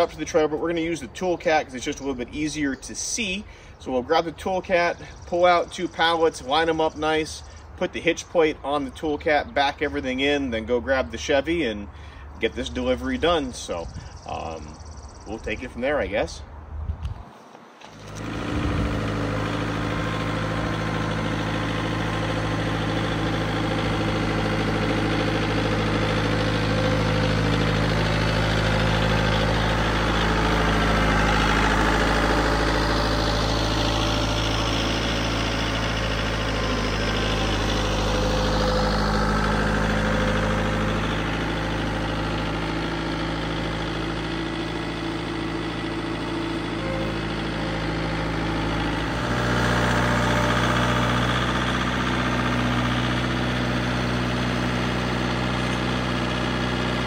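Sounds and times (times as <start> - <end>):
diesel engine running at low revs: 0.0 - 17.2, 17.8 - 57.0.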